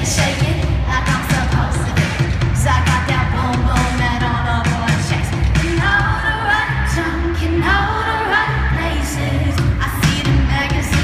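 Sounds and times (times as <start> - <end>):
woman singing pop music: 0.0 - 11.0.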